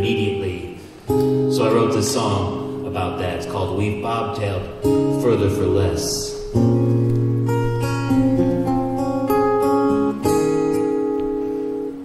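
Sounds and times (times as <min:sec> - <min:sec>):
acoustic guitar chords ringing: 0:00.0 - 0:12.0.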